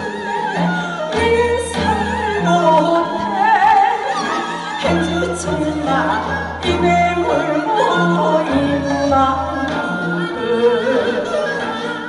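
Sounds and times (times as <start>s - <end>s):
woman singing with vibrato: 0.0s - 12.0s.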